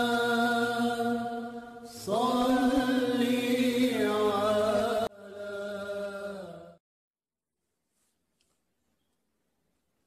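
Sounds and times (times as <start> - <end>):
sustained chant-like vocal tones: 0.0 - 6.8.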